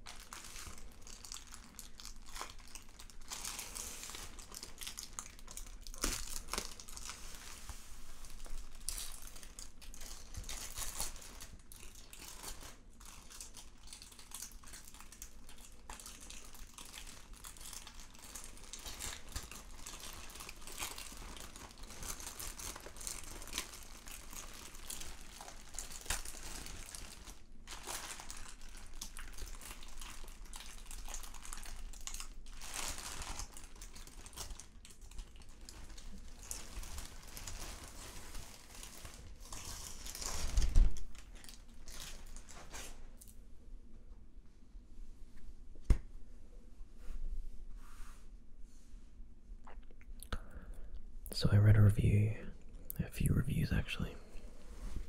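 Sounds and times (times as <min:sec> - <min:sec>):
plastic bag crinkling: 0:00.0 - 0:43.4.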